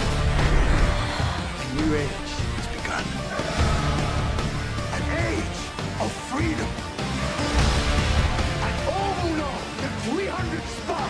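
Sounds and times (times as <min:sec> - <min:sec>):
dramatic trailer music: 0:00.0 - 0:11.0
wordless voices crying out: 0:03.2 - 0:04.6.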